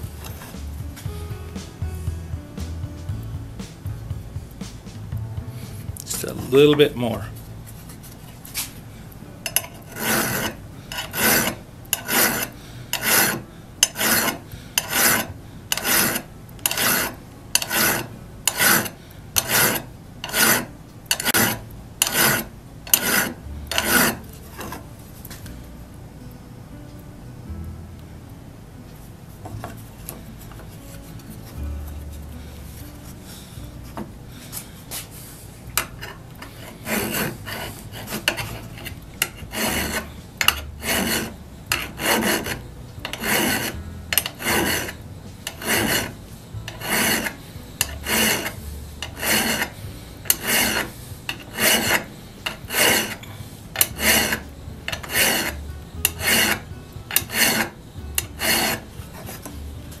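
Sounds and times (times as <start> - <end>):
hand file rasping on steel: 9.5 - 24.8, 35.8 - 59.6.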